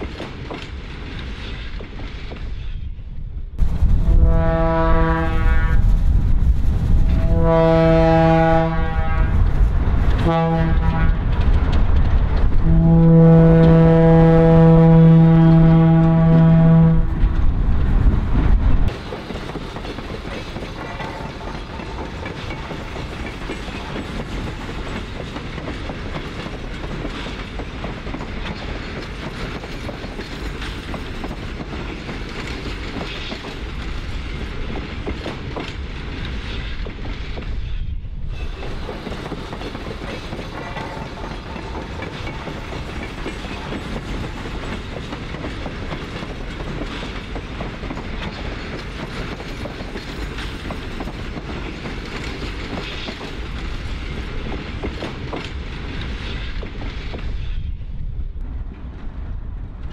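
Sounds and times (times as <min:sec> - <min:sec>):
heavy rumble of passing locomotive: 0:00.0 - 0:59.9
rail cars rolling by: 0:00.0 - 0:59.9
locomotive air horn blasts: 0:04.0 - 0:05.9, 0:07.0 - 0:09.5, 0:10.2 - 0:11.2, 0:12.6 - 0:17.4.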